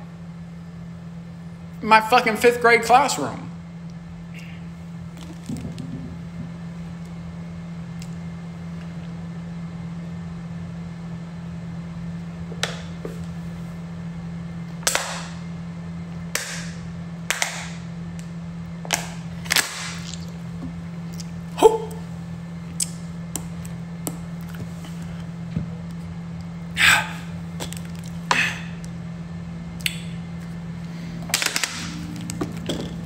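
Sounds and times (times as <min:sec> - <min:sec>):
steady low hum: 0:00.0 - 0:33.0
plastic bottle crackles: 0:05.2 - 0:06.0.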